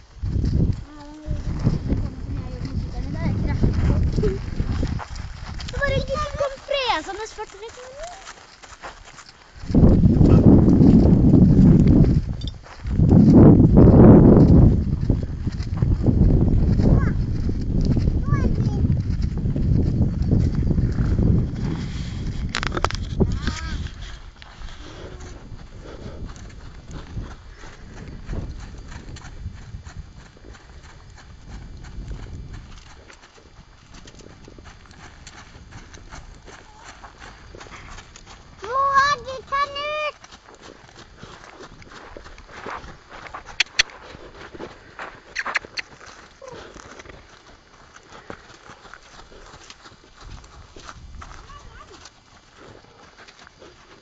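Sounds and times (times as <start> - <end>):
horse hooves clopping on gravel: 0.0 - 54.0
wind rumble on microphone: 0.0 - 54.0.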